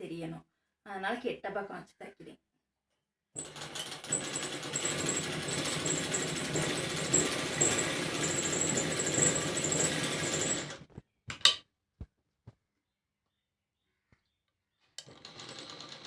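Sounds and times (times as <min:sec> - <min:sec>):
sewing machine stitching: 0:03.4 - 0:10.9, 0:15.0 - 0:16.0.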